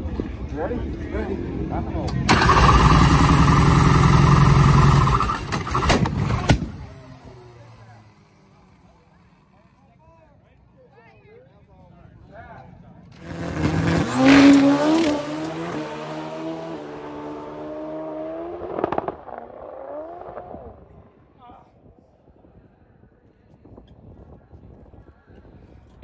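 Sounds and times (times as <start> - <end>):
drag motorcycle engine roaring: 1.6 - 9.6, 13.1 - 20.8
sharp engine crack: 2.3 - 3.9.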